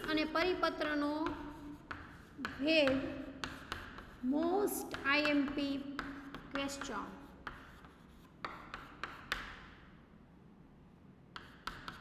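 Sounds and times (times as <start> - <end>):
chalk scratching on chalkboard: 0.0 - 9.8, 11.4 - 12.0
chalk tapping on board: 0.0 - 9.8, 11.3 - 12.0.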